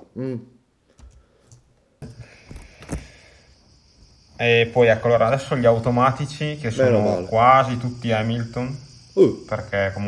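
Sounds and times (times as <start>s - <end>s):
faint steady hiss: 0.0s - 10.0s.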